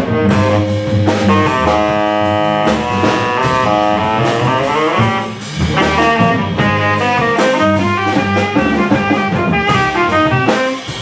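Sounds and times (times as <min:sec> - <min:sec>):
bass: 0:00.0 - 0:11.0
drums: 0:00.0 - 0:11.0
jazz guitar solo: 0:00.0 - 0:11.0.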